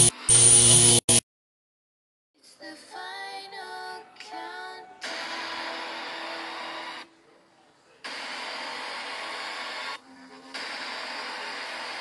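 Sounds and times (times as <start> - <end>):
electric buzz with static hiss: 0.0 - 1.2.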